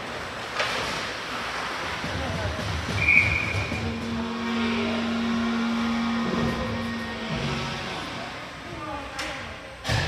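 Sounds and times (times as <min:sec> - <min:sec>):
ice rink background noise: 0:00.0 - 0:10.0
steady low tone: 0:02.6 - 0:09.0
referee's whistle blowing: 0:03.0 - 0:03.8.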